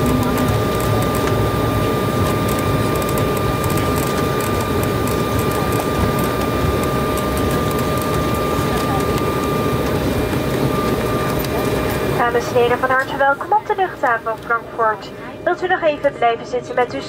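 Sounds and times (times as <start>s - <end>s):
low rumble of wheels and engines: 0.0s - 17.0s
steady whine: 0.0s - 17.0s.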